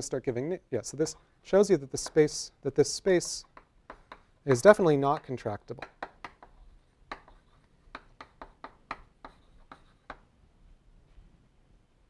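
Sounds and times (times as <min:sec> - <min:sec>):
chalk tapping on blackboard: 0:01.9 - 0:10.3.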